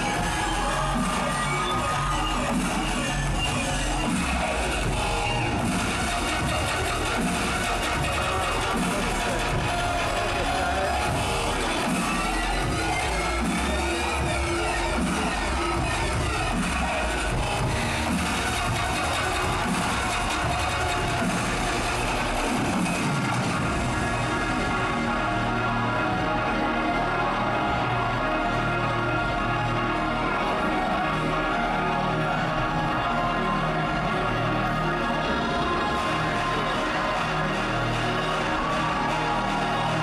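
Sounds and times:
loud electronic dance music: 0:00.0 - 0:40.0.

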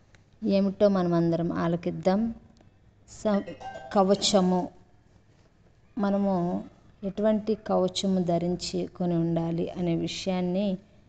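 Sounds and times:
woman preaching: 0:03.1 - 0:04.7, 0:06.0 - 0:10.8
faint ringing tone: 0:03.3 - 0:04.7.

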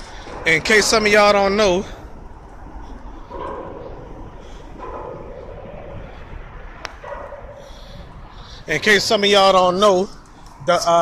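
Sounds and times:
low outdoor rumble: 0:00.0 - 0:11.0
dog barking: 0:03.3 - 0:04.0, 0:04.8 - 0:05.6, 0:07.0 - 0:07.7.

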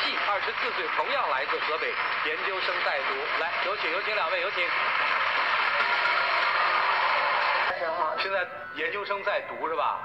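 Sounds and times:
audience applauding: 0:00.0 - 0:07.7.

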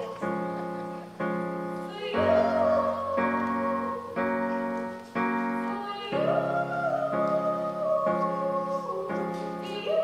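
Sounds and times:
digital keyboard chords: 0:00.0 - 0:10.0.

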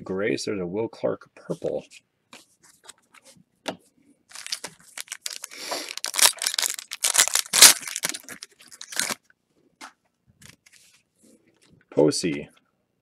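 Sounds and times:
foil wrapper crackling: 0:04.3 - 0:09.2.

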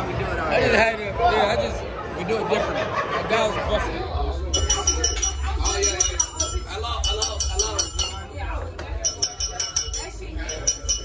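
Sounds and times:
chatter of diners: 0:00.0 - 0:11.0
tableware clinking: 0:04.5 - 0:11.0.

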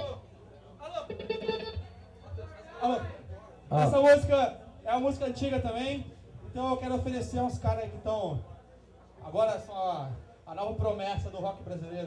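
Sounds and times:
voices in room: 0:00.0 - 0:12.0.

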